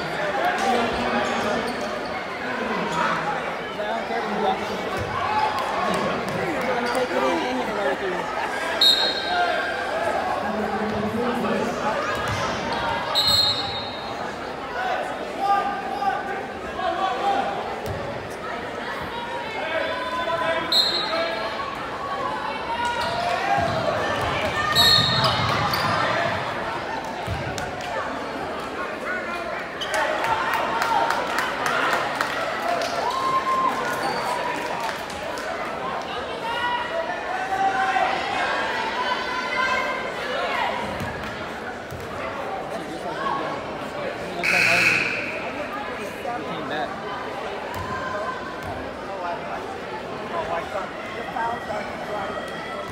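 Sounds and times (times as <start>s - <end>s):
crowd chatter in gymnasium: 0.0s - 52.9s.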